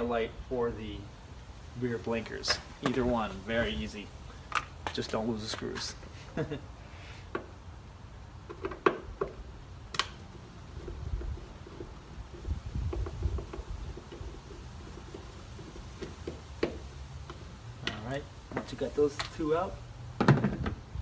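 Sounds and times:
sharp click: 0:09.9 - 0:10.2.

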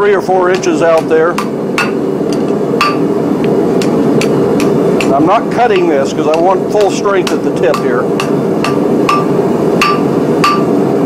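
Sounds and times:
gas forge burner: 0:00.0 - 0:11.0
hammer striking metal on anvil: 0:00.4 - 0:03.2, 0:03.8 - 0:10.8.

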